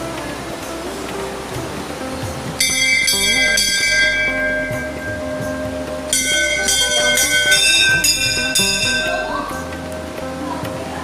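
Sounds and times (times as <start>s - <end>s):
brass temple bells ringing: 2.6s - 9.7s.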